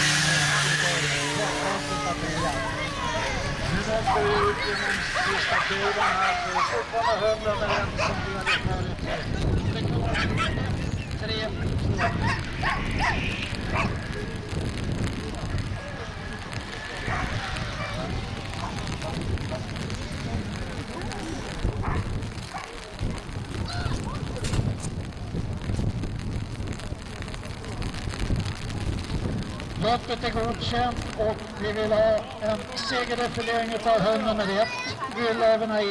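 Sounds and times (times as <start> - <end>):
voices: 0.0 - 25.4, 26.8 - 35.9
steady low rumble: 7.2 - 34.0.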